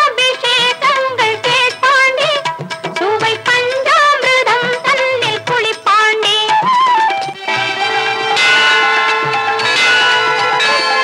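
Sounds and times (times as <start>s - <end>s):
instrumental film song music: 0.0s - 11.0s
temple bells ringing: 7.4s - 11.0s.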